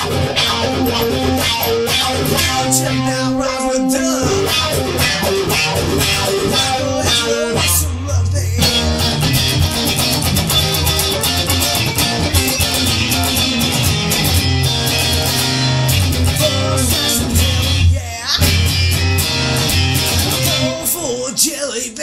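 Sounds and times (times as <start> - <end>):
steady bass line: 0.0 - 20.8
rock electric guitars: 0.0 - 21.6.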